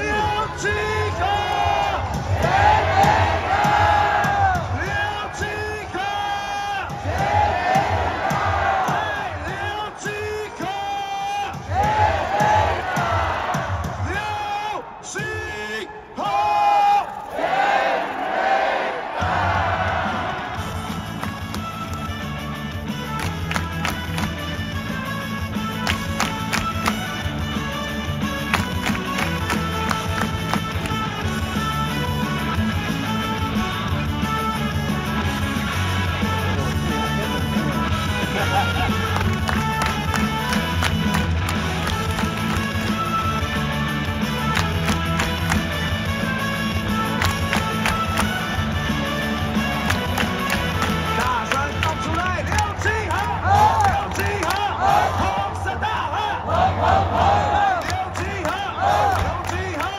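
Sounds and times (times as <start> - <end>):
recorded cheer song: 0.0 - 59.9
people shouting chants: 0.4 - 10.6, 11.6 - 15.5, 16.2 - 20.6, 52.7 - 59.9
crowd chanting: 1.1 - 5.4, 6.9 - 10.0, 11.6 - 14.1, 17.2 - 20.8, 52.8 - 59.9
pounding drum beat: 1.9 - 5.6, 6.4 - 14.4, 28.2 - 31.7.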